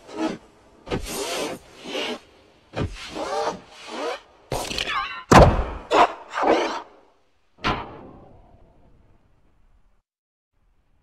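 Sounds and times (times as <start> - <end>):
cartoon thuds and whacks: 4.5 - 6.6.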